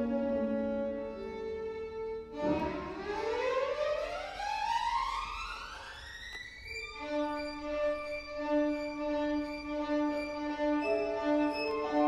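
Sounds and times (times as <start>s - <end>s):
violin ascending run: 2.2s - 12.0s.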